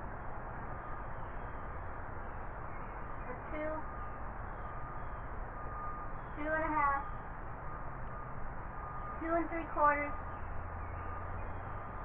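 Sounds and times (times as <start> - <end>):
low background hum: 1.6 - 11.6.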